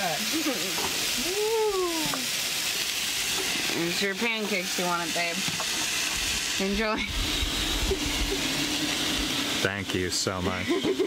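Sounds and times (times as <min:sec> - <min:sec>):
pancake sizzling in pan: 0:00.0 - 0:11.0.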